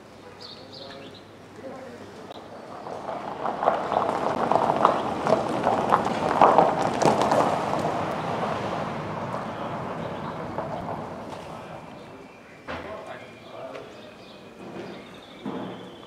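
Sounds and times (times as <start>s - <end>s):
clattering and crunching knocks: 3.3s - 11.8s.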